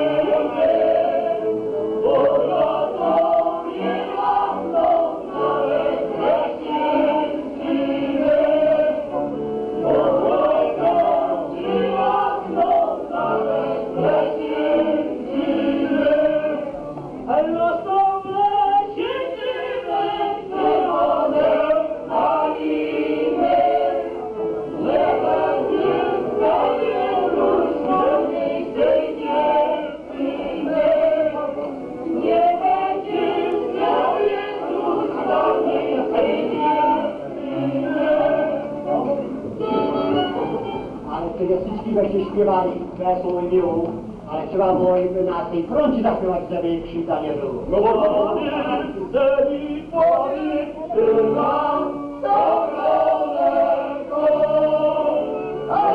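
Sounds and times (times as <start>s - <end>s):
men and women singing in chorus: 0.0s - 40.3s, 47.7s - 55.9s.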